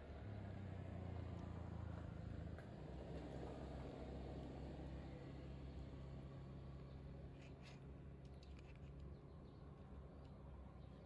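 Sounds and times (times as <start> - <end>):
faint low engine hum: 0.0 - 11.0.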